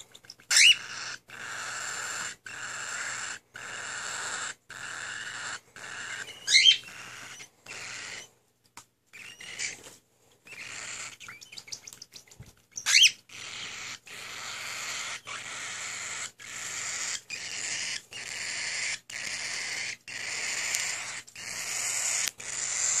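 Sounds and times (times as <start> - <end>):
bird chick raspy begging calls: 0.0 - 8.3, 9.2 - 9.8, 10.5 - 23.0.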